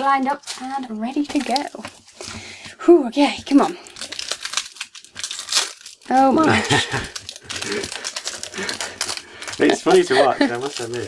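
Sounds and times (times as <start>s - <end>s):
foil wrapper tearing: 0.0s - 2.4s, 3.8s - 11.0s.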